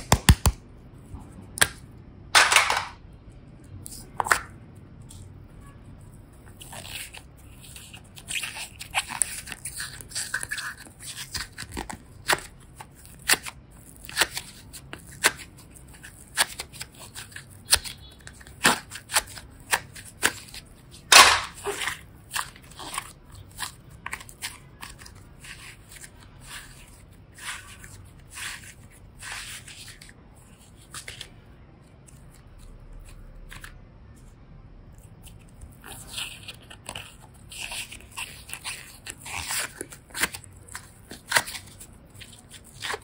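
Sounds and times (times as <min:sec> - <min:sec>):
slime clicking and squishing: 0:00.0 - 0:00.6, 0:03.4 - 0:43.0.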